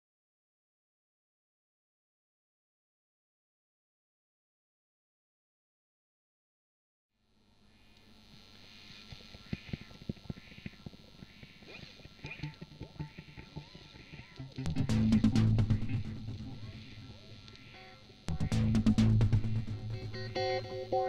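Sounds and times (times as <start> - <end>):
loud soundtrack music: 14.5 - 17.1, 18.3 - 21.0.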